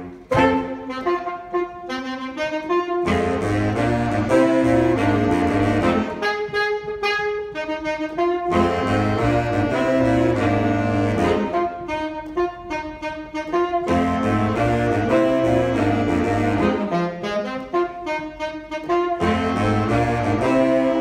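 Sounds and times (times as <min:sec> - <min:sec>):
bass saxophone: 0:00.0 - 0:21.0
higher saxophones playing chords: 0:00.0 - 0:21.0.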